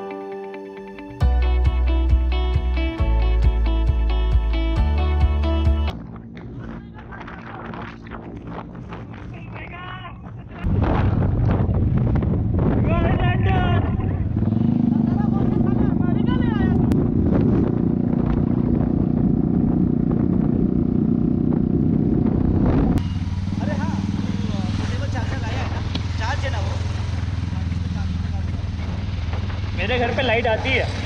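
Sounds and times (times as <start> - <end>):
wind rumble on microphone: 5.9 - 23.0
motorcycle engine: 10.5 - 31.0.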